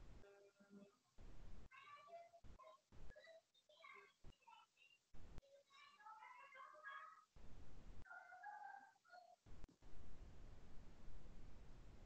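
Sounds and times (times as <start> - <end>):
low microphone background noise: 0.0 - 12.0.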